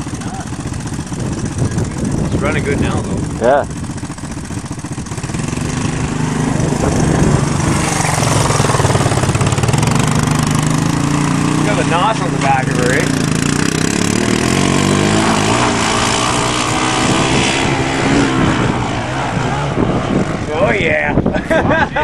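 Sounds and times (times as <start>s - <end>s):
atv engine revving: 0.0s - 21.3s.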